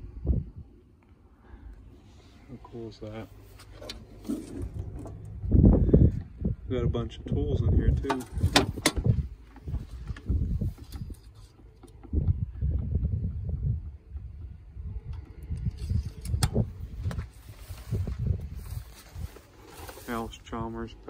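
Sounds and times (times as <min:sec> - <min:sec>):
wind rumble on microphone: 0:00.0 - 0:03.3, 0:03.9 - 0:21.0
microphone handling noise: 0:03.4 - 0:06.7, 0:07.4 - 0:11.3, 0:12.0 - 0:20.3.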